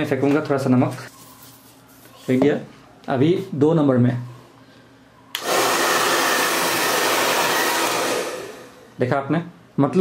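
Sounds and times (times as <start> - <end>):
hair dryer switch click: 5.3 - 5.6
hair dryer blowing air: 5.4 - 8.9.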